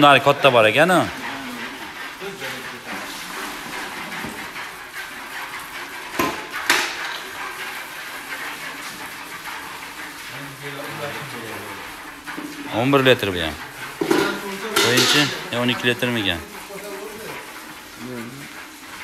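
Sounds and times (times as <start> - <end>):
men's voices murmuring: 0.0 - 3.7, 10.3 - 18.8
metal buckets knocking: 0.0 - 19.0
milk pouring between buckets: 0.0 - 19.0.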